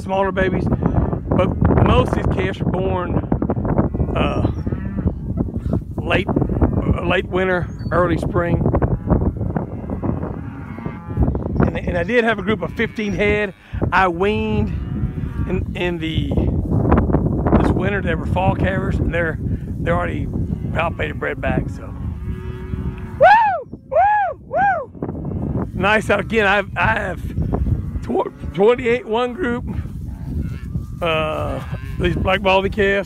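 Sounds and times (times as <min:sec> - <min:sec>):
cattle mooing: 0:03.8 - 0:05.4, 0:08.8 - 0:13.7, 0:20.5 - 0:23.2, 0:30.1 - 0:32.5.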